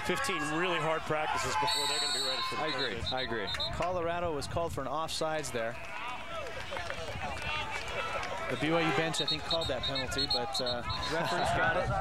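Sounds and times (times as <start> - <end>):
voices talking and calling out: 0.0 - 4.5, 5.1 - 12.0
steady outdoor background noise: 0.0 - 12.0.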